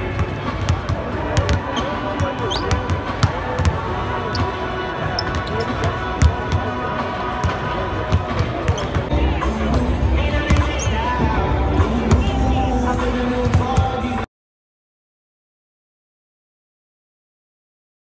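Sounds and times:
arena music: 0:00.0 - 0:14.3
background voices: 0:01.0 - 0:14.3.

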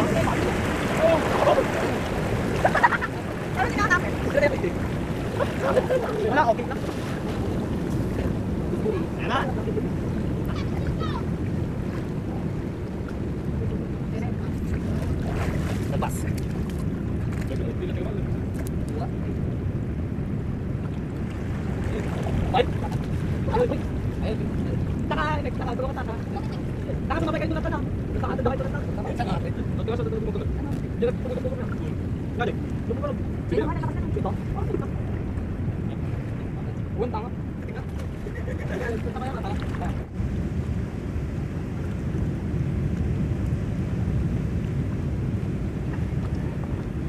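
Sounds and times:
voices: 0:00.0 - 0:12.7, 0:21.8 - 0:40.1
sea surf: 0:00.0 - 0:47.0
wind on microphone: 0:00.0 - 0:47.0.

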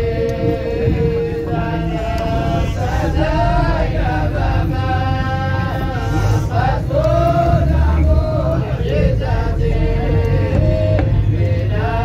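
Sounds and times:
steady low drone: 0:00.0 - 0:12.0
voices chanting long notes: 0:00.0 - 0:12.0.

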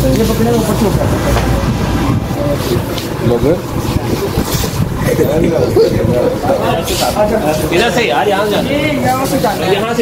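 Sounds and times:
busy shop background noise: 0:00.0 - 0:10.0
people chattering: 0:00.0 - 0:10.0.

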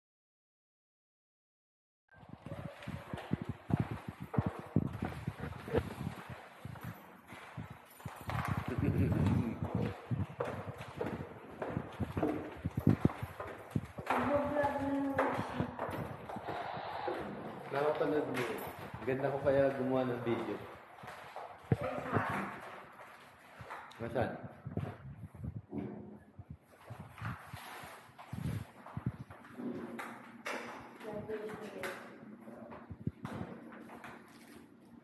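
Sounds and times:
footsteps on tiled floor: 0:02.1 - 0:35.0.

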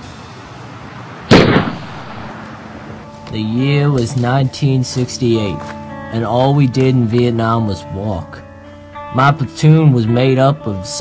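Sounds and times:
rifle gunshot: 0:01.3 - 0:02.5.

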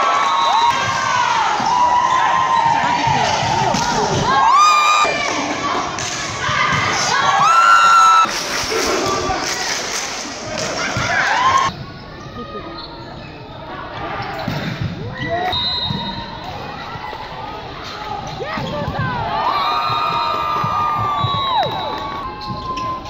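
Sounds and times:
crowd cheering: 0:00.0 - 0:11.7, 0:18.4 - 0:23.0
sneakers squeaking on court floor: 0:22.1 - 0:23.0.

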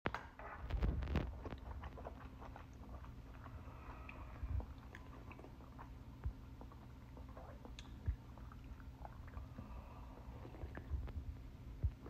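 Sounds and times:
sipping and swallowing soup: 0:01.3 - 0:11.3.

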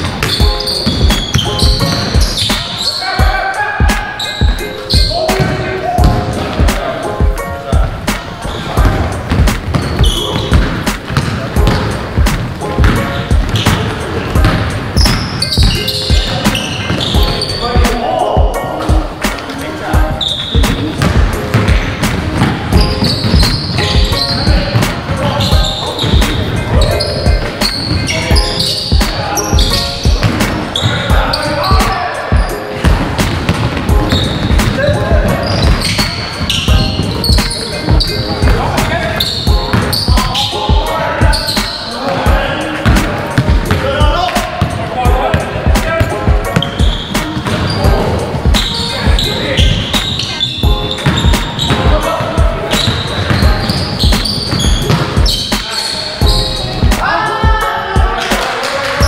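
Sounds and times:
basketballs bouncing: 0:00.0 - 0:02.8, 0:03.8 - 0:06.8, 0:07.8 - 0:57.0
sneakers squeaking on hardwood: 0:00.0 - 0:06.8, 0:07.8 - 0:57.0
players calling out: 0:34.0 - 0:59.0.

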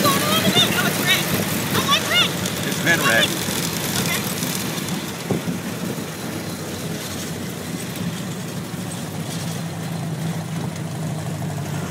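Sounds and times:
car engine running: 0:00.0 - 0:11.9.

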